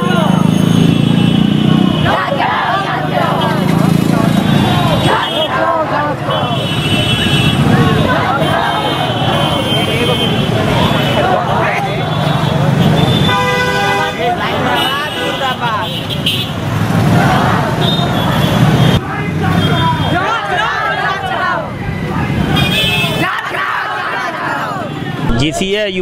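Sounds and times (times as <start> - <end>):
vehicle horns honking: 0.0 - 21.4, 22.3 - 23.4
vehicle engines running: 0.0 - 26.0
voices of walking crowd: 0.0 - 26.0.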